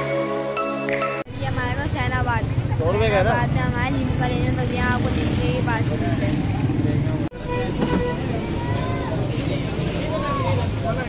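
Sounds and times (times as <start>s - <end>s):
people's voices: 1.3s - 11.0s
traffic rumble: 1.3s - 11.0s.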